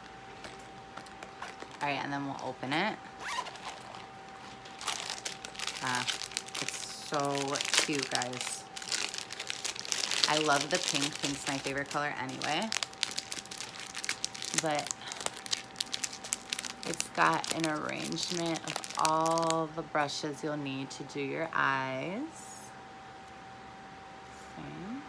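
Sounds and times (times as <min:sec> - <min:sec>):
plastic packaging crinkling: 0:00.0 - 0:19.8
zipper being pulled open: 0:03.2 - 0:04.6.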